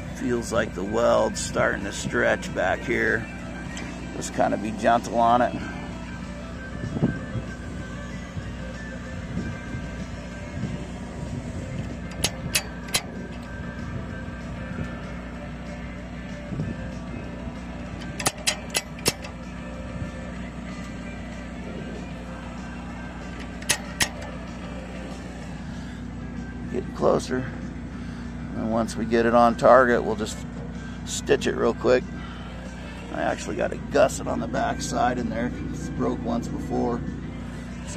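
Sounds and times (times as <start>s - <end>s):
engine running steadily: 0.0s - 37.9s
sharp clicks: 18.0s - 19.4s, 23.4s - 24.4s.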